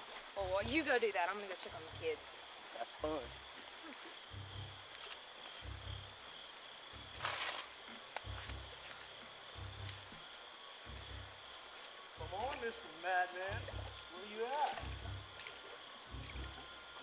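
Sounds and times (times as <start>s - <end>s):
night insects chirping: 0.0s - 17.0s
rustling hiss: 0.0s - 17.0s
low throbbing beat: 0.4s - 0.9s, 1.7s - 2.2s, 3.0s - 3.5s, 4.3s - 4.8s, 5.6s - 6.2s, 6.9s - 7.4s, 8.2s - 11.5s, 12.2s - 12.8s, 13.4s - 15.4s, 16.1s - 17.0s.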